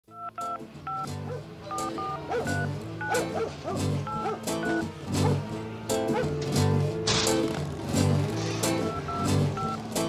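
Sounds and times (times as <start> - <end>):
telephone keypad dialling beeps: 0.1 - 1.1, 1.7 - 2.7, 4.1 - 4.8, 8.9 - 9.8
bass line and backing music: 0.2 - 10.0.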